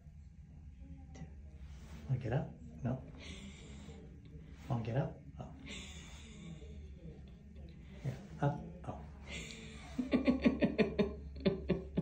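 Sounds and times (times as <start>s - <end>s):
laughter: 9.3s - 12.0s.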